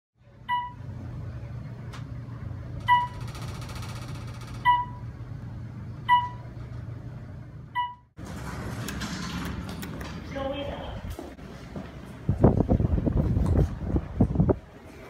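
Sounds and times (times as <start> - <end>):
low hum of moving elevator: 0.2 - 15.0
elevator beeps: 0.4 - 0.9, 2.8 - 5.1, 6.0 - 6.6, 7.7 - 8.1.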